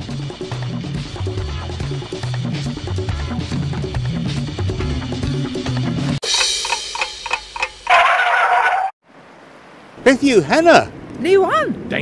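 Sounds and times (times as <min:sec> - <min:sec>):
clock ticking fast: 0:06.2 - 0:07.9.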